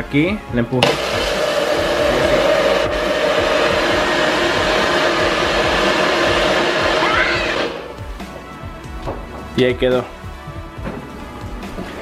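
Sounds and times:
blender motor whirring: 0.8s - 8.2s.

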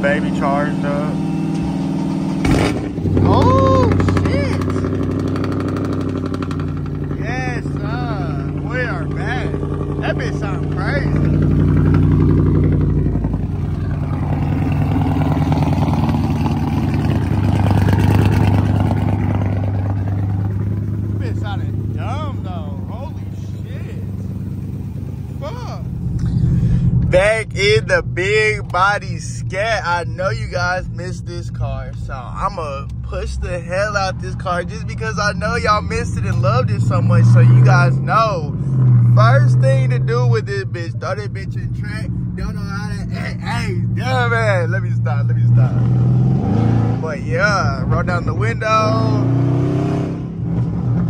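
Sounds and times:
car engine idling: 0.0s - 49.3s.

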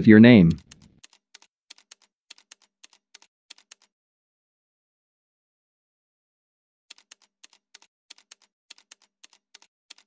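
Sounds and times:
keyboard typing clicks: 0.5s - 3.9s, 6.9s - 10.0s.

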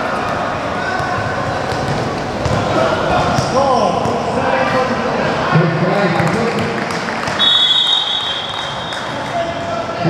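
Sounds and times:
basketballs bouncing on hard court: 1.0s - 2.7s.

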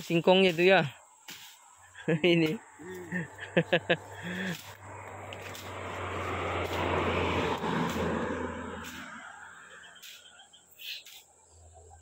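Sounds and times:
people laughing: 1.9s - 4.7s
vehicle passing on road: 2.0s - 12.0s.

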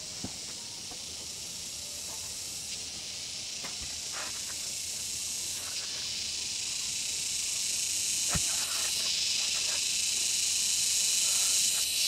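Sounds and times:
high-pitched insect drone: 0.0s - 12.0s
wooden pole knocking ground: 8.3s - 8.7s.

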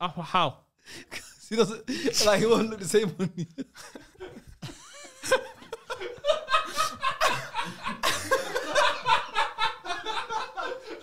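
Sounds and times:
men laughing together: 0.9s - 11.0s.

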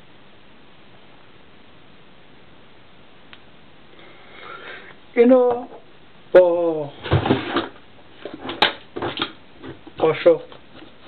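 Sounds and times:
kitchen handling knocks and rustles: 6.9s - 10.0s.

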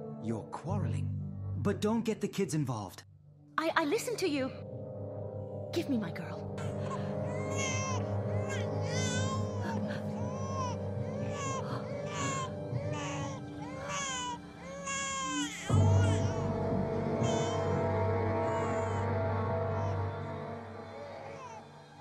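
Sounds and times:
background music: 0.0s - 22.0s
newborn baby crying: 6.6s - 16.6s, 17.2s - 19.1s, 20.8s - 21.7s.

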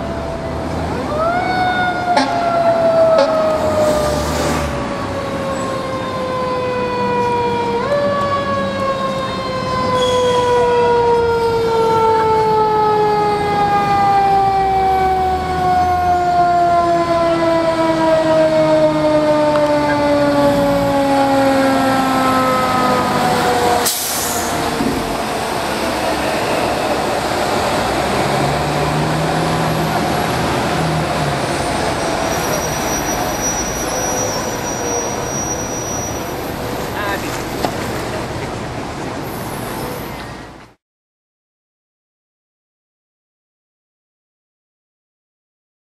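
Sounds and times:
fire truck siren winding down: 0.0s - 38.1s
street traffic hum: 0.0s - 40.8s
truck engine: 0.0s - 40.8s.

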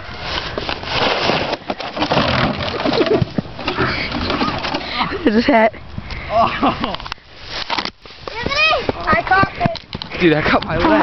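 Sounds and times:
plastic sled scraping over dirt: 0.0s - 5.6s.

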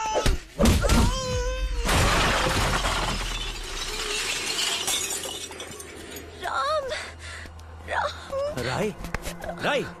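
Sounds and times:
glass shattering: 1.9s - 6.2s
falling glass fragments: 1.9s - 6.3s.

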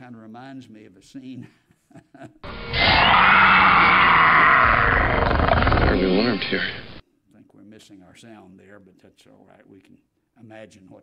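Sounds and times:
animal cry: 2.4s - 7.0s.

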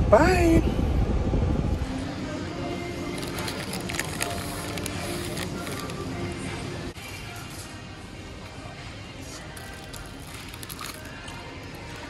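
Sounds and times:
background music: 1.7s - 12.0s
sharp plastic crackles: 3.0s - 6.2s, 9.6s - 12.0s
plastic packets crinkling: 3.0s - 6.4s, 9.6s - 12.0s.

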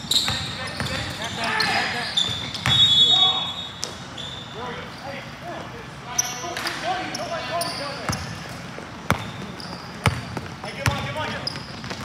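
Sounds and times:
sneakers squealing: 0.0s - 12.0s
players' voices echoing: 0.2s - 12.0s.

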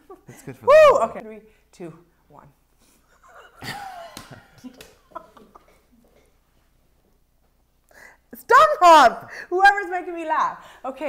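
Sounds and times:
people laughing breathily: 3.1s - 5.8s.

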